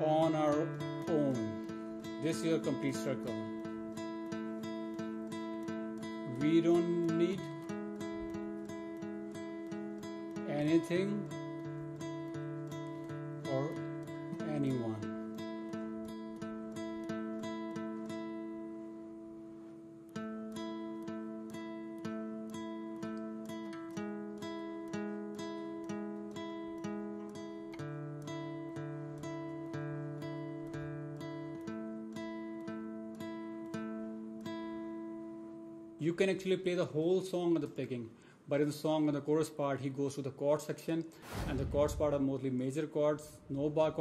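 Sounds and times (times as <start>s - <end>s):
acoustic guitar riff: 0.0s - 38.5s.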